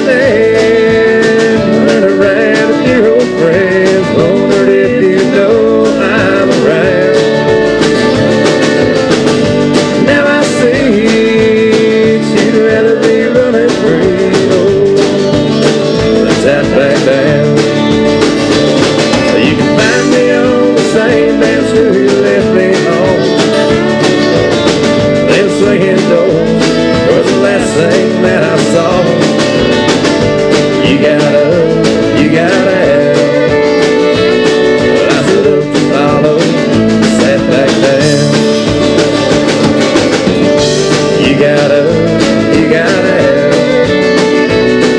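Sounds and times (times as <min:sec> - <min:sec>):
country band playing: 0:00.0 - 0:44.9.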